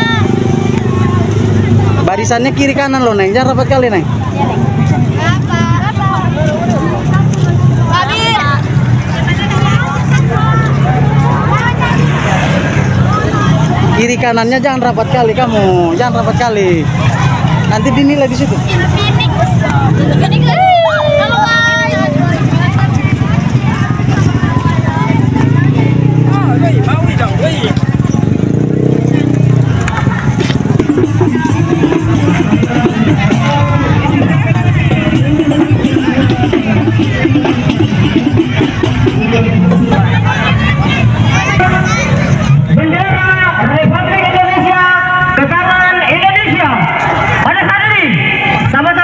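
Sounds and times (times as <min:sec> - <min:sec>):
traffic engine hum: 0:00.0 - 0:49.0
voices chattering: 0:00.0 - 0:49.0.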